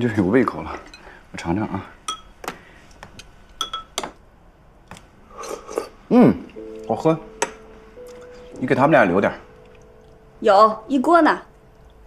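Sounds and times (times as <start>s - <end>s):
metal spoon clinking ceramic bowl: 2.1s - 2.3s, 3.6s - 4.1s.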